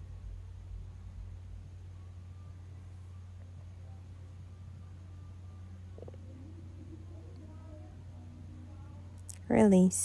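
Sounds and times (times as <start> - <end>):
faint wavering tones: 0.0 - 10.0
steady low hum: 0.0 - 10.0.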